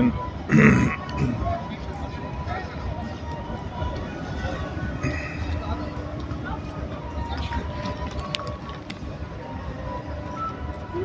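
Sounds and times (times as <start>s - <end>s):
indistinct voices: 0.0s - 8.8s.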